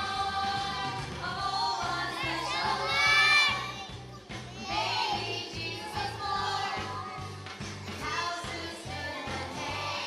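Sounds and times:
children singing loudly: 0.0 - 7.4
backing track with steady beat: 0.0 - 10.0.

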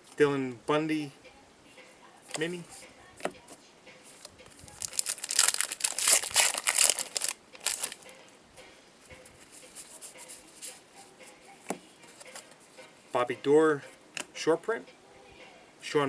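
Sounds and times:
cards being handled: 4.2 - 8.1, 11.7 - 12.6
wrapper tearing and crinkling: 4.8 - 8.0.

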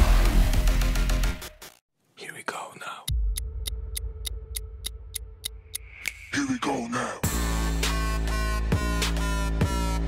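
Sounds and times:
whispered voice: 2.2 - 3.1
ticking beat: 3.1 - 6.2.

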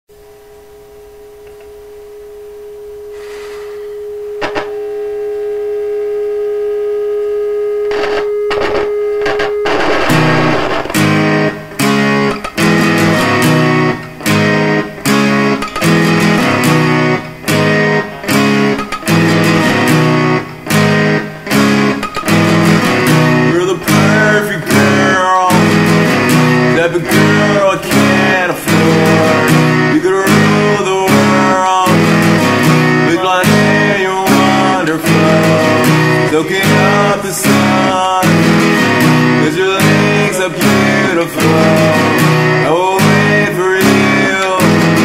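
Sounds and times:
strummed guitar chords: 0.1 - 45.0
held guitar note: 7.8 - 24.0.

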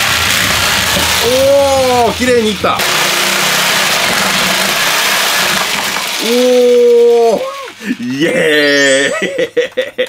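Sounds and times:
electric jigsaw cutting plastic: 0.0 - 8.2
man saying ooh: 6.2 - 9.2.

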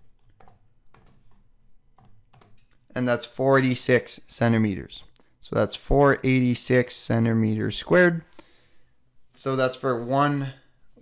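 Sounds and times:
computer keyboard typing: 0.0 - 2.8.

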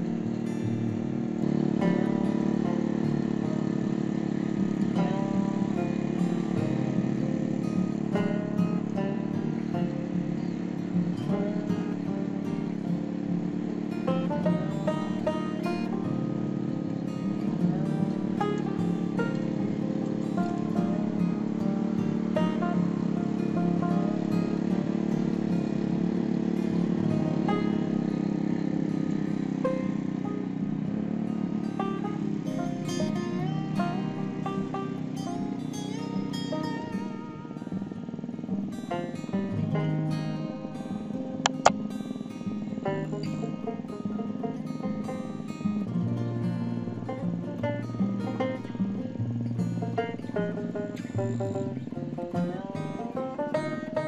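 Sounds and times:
plucked-string background music: 0.0 - 54.0
small petrol tiller engine running: 0.0 - 54.0.

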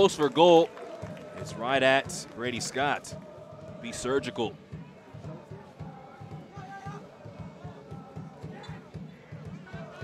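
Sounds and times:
murmur of spectators: 0.0 - 10.0
players running on pitch: 0.0 - 10.0
players shouting: 0.0 - 10.0.

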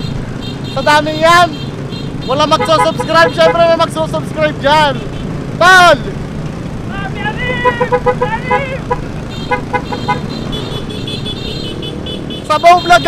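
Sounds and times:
scooter horns honking: 0.0 - 3.9, 4.8 - 5.4, 7.4 - 13.0
scooter engines: 0.0 - 13.0
wind: 0.0 - 13.0.

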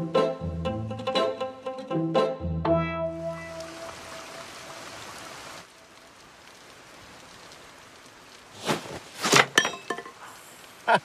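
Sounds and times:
plucked string music: 0.0 - 4.2
steady rain falling: 3.1 - 11.0.

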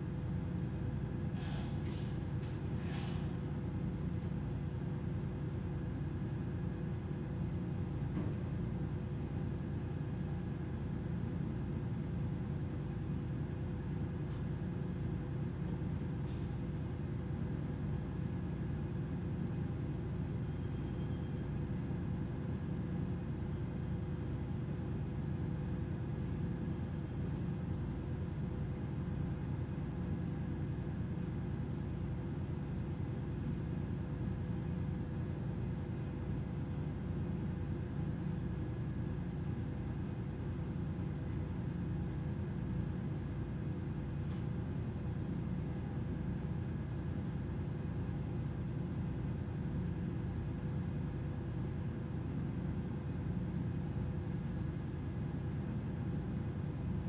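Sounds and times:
faint even hum: 0.0 - 47.1
low rumble of ship machinery: 0.0 - 57.0.

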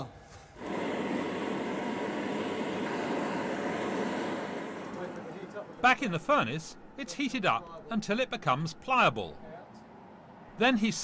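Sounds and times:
glass furnace burners rushing: 0.6 - 6.4.

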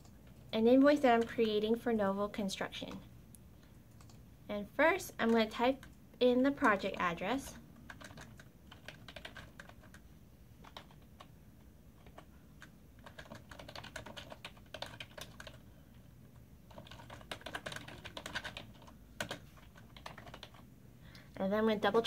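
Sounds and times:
computer keyboard typing: 0.0 - 1.8, 3.9 - 4.2, 5.0 - 20.7.

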